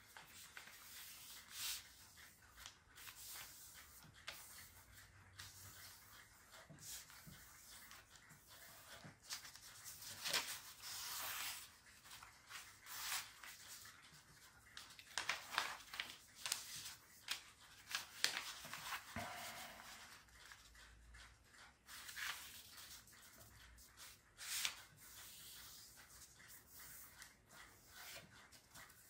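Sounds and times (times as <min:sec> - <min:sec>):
paper rustling as folded: 0:00.1 - 0:04.6, 0:08.6 - 0:13.8, 0:14.8 - 0:20.6, 0:21.9 - 0:23.4, 0:24.0 - 0:29.0.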